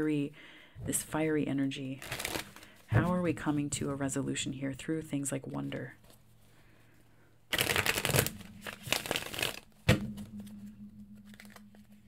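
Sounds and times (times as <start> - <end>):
cards being shuffled: 2.0 - 2.8, 7.5 - 9.8, 11.2 - 11.8.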